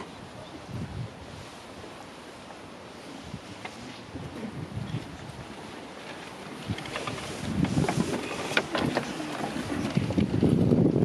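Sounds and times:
wind buffeting microphone: 0:00.0 - 0:02.1, 0:02.9 - 0:11.0.

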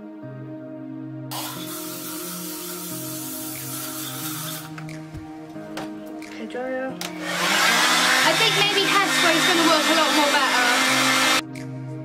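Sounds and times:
hair dryer blowing: 0:01.3 - 0:04.8, 0:07.0 - 0:11.4.

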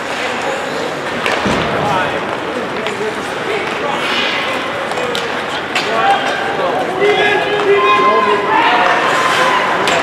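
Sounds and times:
players calling out: 0:05.2 - 0:10.0
skates scraping ice: 0:08.6 - 0:10.0.

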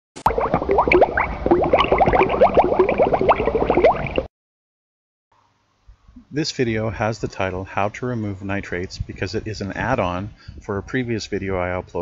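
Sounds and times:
water bubbling: 0:00.2 - 0:04.3.

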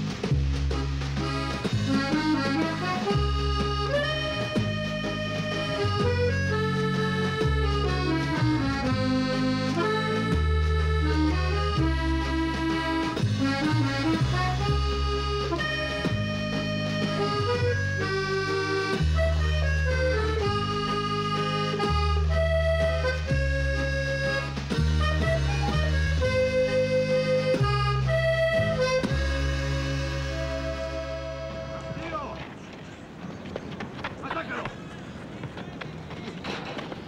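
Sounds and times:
bass notes: 0:00.0 - 0:32.2
accordion melody: 0:00.0 - 0:32.3.

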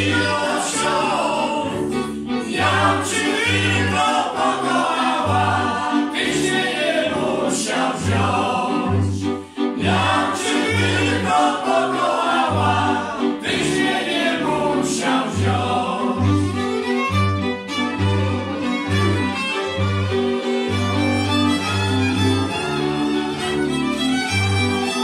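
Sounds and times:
men singing: 0:00.0 - 0:16.4
fiddles playing: 0:00.0 - 0:25.0.

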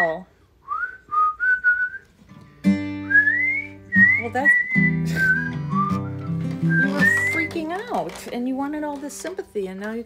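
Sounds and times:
man whistling short notes: 0:00.6 - 0:02.2, 0:03.0 - 0:07.4
acoustic guitar chord strum: 0:02.2 - 0:07.6.

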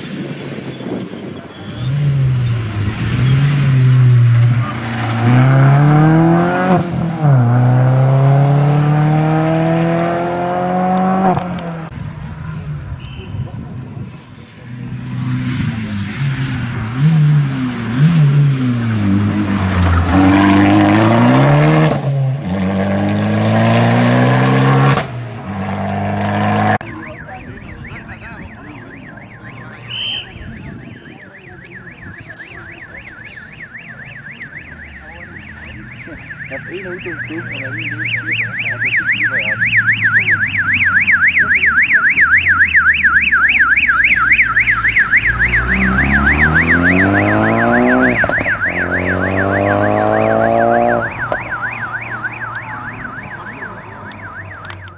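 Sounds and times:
rally car accelerating hard: 0:01.6 - 0:11.9, 0:14.8 - 0:26.8, 0:45.3 - 0:51.1
car engine revving: 0:01.6 - 0:12.9, 0:14.5 - 0:54.9
fast warbling siren: 0:26.7 - 0:54.9.

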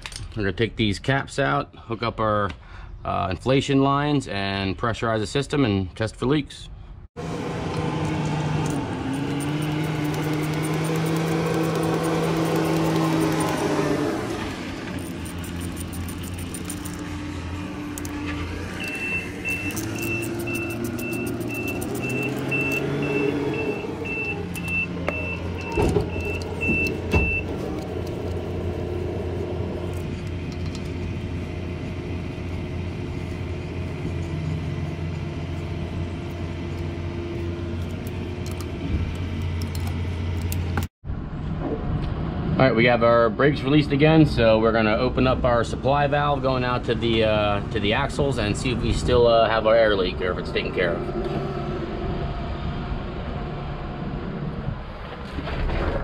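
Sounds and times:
vehicle engines running: 0:07.2 - 0:55.9
sharp clicks: 0:07.7 - 0:13.9, 0:17.9 - 0:23.3
metallic clinking of hose fittings: 0:15.0 - 0:17.1, 0:18.8 - 0:22.8
high beeping: 0:18.0 - 0:27.6.

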